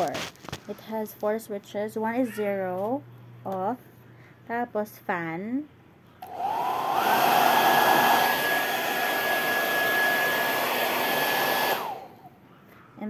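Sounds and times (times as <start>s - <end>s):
hair dryer motor whine: 6.2s - 12.3s.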